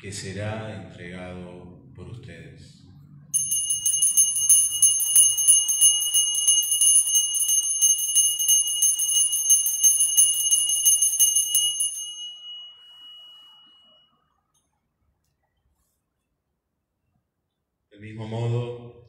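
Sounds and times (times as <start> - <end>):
altar bells jingling: 3.4 - 14.1.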